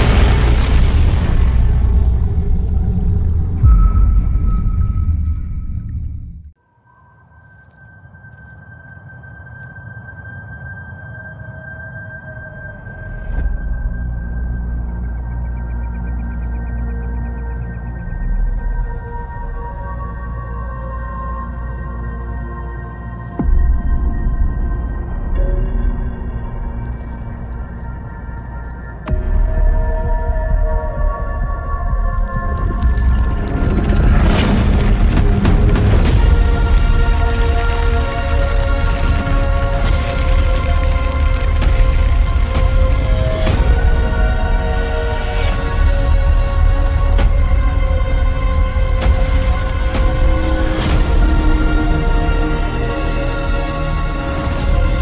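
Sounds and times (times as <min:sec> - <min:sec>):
crackling sound effect: 0:07.2 - 0:09.8, 0:26.5 - 0:29.1, 0:32.2 - 0:43.6.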